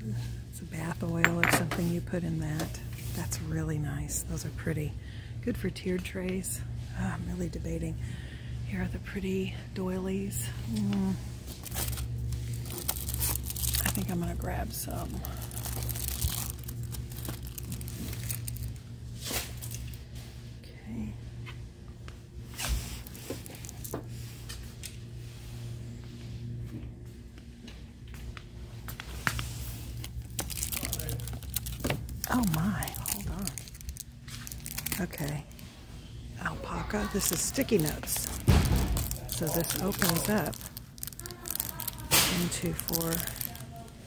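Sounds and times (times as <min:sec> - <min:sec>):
plastic packaging crinkling: 0:11.5 - 0:20.0, 0:22.8 - 0:24.0, 0:29.8 - 0:35.7, 0:36.6 - 0:44.0.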